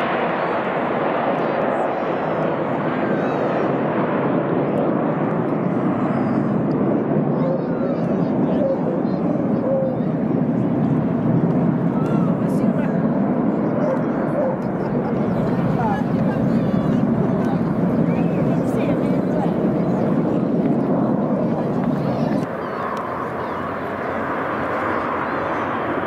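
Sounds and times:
jet noise: 0:00.0 - 0:26.0
people's voices: 0:00.0 - 0:26.0.

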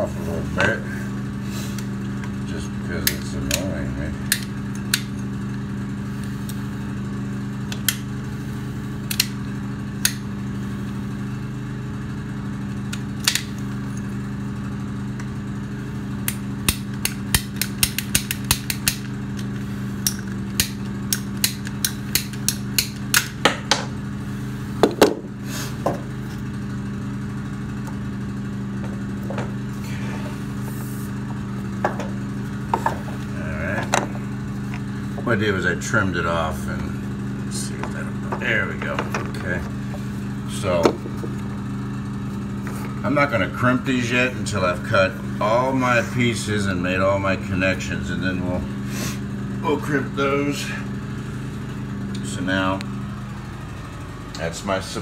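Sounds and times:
low machine hum: 0:00.0 - 0:55.0
hand tool clicks and snaps: 0:04.3 - 0:05.1, 0:09.1 - 0:09.4, 0:13.2 - 0:13.6, 0:16.2 - 0:23.4.

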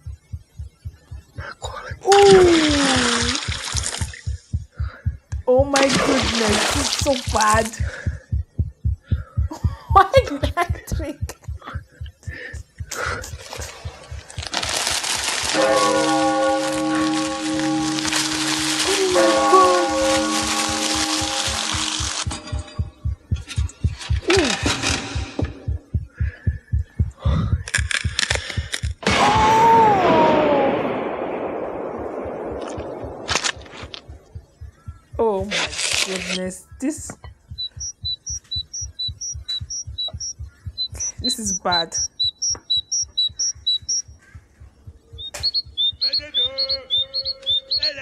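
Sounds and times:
rapid heartbeat thumping: 0:00.0 - 0:30.2, 0:31.4 - 0:36.0, 0:36.7 - 0:48.0
burst of sharp clicks: 0:27.6 - 0:29.8, 0:30.8 - 0:36.5.

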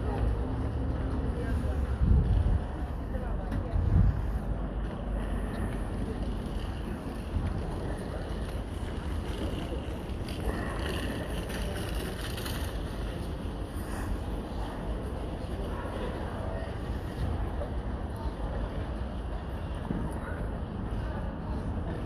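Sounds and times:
wind buffeting microphone: 0:01.6 - 0:05.0.

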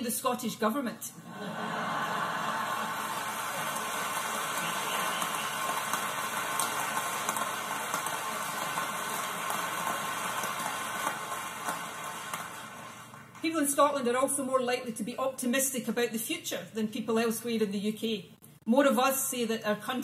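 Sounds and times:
audience laughing: 0:01.2 - 0:07.4
audience applauding: 0:01.7 - 0:13.4.

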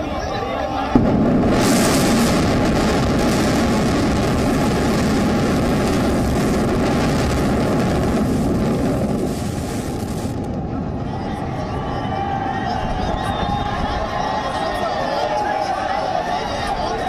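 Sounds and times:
distant building collapse roar: 0:00.8 - 0:17.0.

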